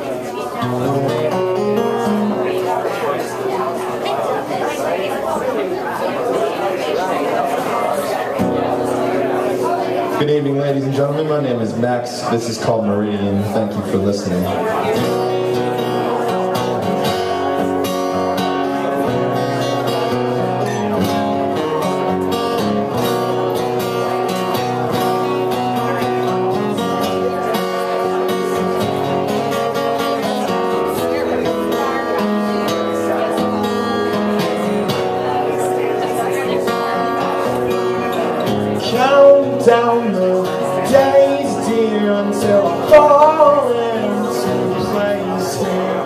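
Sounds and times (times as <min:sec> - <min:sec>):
acoustic guitar strumming: 0:00.0 - 0:05.0, 0:07.4 - 0:46.0.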